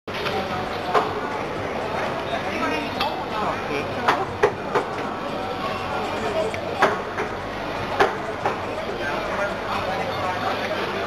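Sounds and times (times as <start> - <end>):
indistinct crowd chatter: 0.1 - 11.0.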